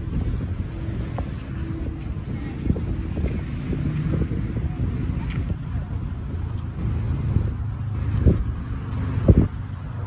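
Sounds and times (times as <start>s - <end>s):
road traffic rumble: 0.0s - 10.0s
wind buffeting microphone: 0.0s - 10.0s.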